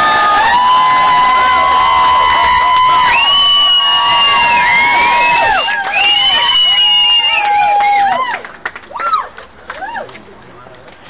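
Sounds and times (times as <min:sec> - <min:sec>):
crowd cheering and yelling: 0:00.0 - 0:10.2.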